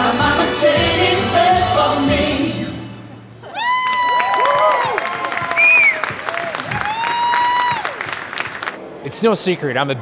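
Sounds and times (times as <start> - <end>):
short whoop: 3.4 - 7.9
audience applauding: 3.7 - 8.8.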